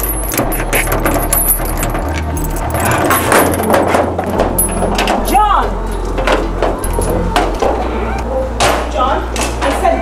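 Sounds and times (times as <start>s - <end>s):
metallic clinking and jangling: 0.0s - 7.3s.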